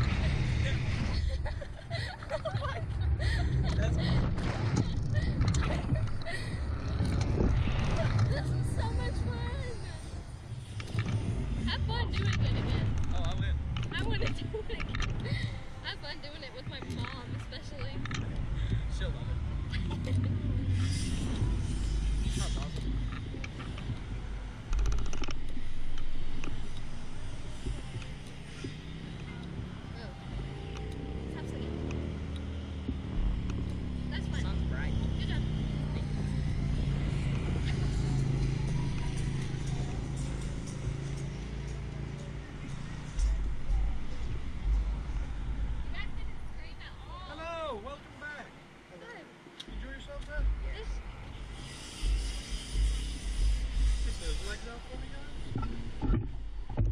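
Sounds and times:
riders' voices: 0.0 - 24.0, 27.8 - 56.2
wind buffeting microphone: 0.0 - 47.1.

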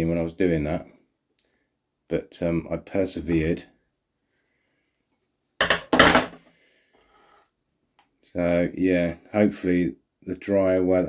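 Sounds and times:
knocks: 5.6 - 6.4
clatter of hard objects: 5.6 - 6.5.

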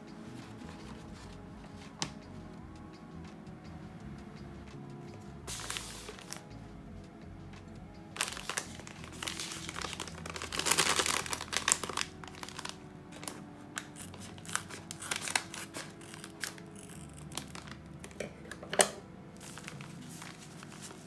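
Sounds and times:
foil bag crinkling: 5.5 - 6.5, 8.2 - 18.2, 19.4 - 21.0.

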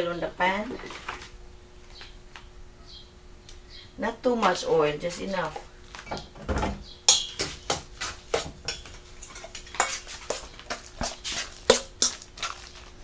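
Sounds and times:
metal spoon scraping a metal bowl: 7.1 - 12.9.

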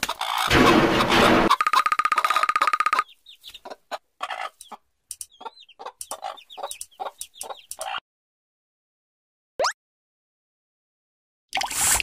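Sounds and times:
chicks peeping: 0.0 - 8.0
hen clucking: 0.0 - 8.0.

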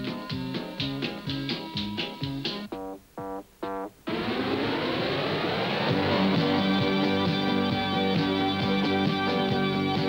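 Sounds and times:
rising synth whoosh: 4.1 - 6.8
band music with guitar: 5.8 - 10.0.

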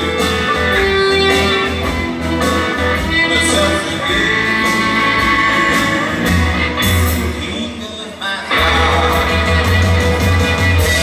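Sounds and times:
electric guitars: 0.0 - 11.0
live rock band: 0.0 - 11.0.

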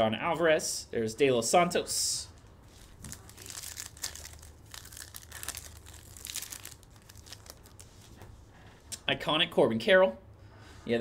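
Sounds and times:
foil wrapper crinkling: 2.8 - 8.0.

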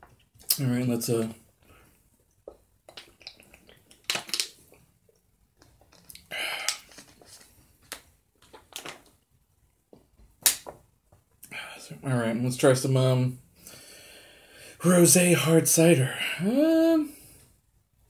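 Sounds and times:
plastic water bottle crackling: 5.6 - 9.2
heavy breath through nose: 6.3 - 7.2, 13.6 - 14.8.

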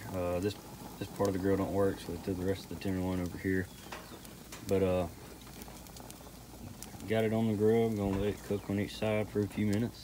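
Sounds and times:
meat sizzling on grill: 0.0 - 10.0
soft crackles: 0.0 - 10.0.

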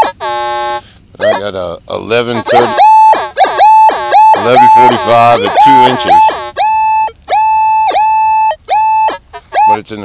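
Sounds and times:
metal detector beeping: 0.0 - 1.5, 2.4 - 9.9
metal detector chirps: 0.0 - 1.5, 2.4 - 9.9.

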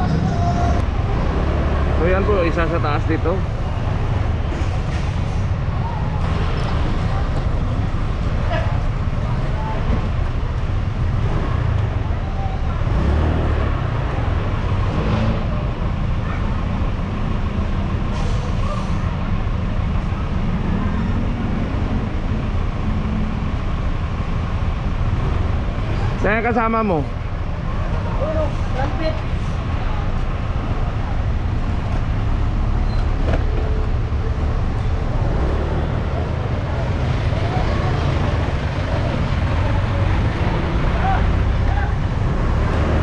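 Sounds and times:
street traffic: 0.0 - 43.0.

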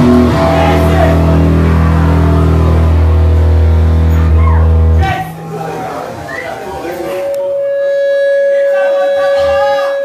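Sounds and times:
electric guitar and bass drone: 0.0 - 6.3, 7.2 - 10.0.

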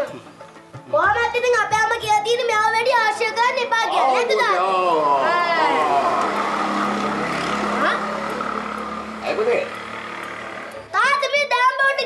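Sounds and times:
motor engine humming: 5.2 - 11.0.

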